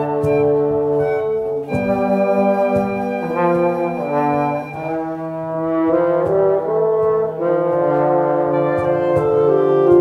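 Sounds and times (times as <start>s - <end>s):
brass and flute sustained chords: 0.0s - 10.0s.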